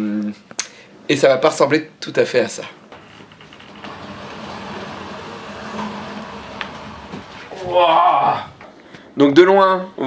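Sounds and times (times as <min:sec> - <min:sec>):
sofa scraping across wooden floor: 0:03.0 - 0:08.4.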